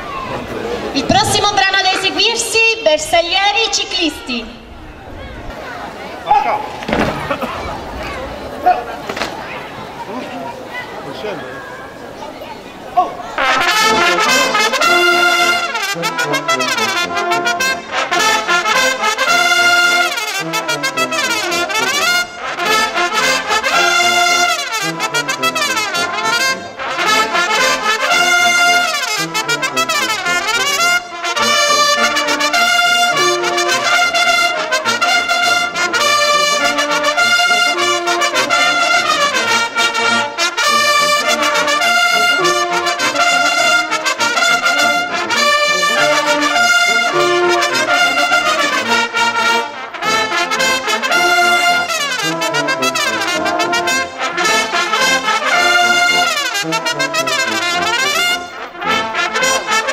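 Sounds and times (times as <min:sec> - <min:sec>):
brass band playing a military march: 0:00.0 - 0:04.3, 0:05.5 - 0:11.9, 0:13.2 - 0:59.9.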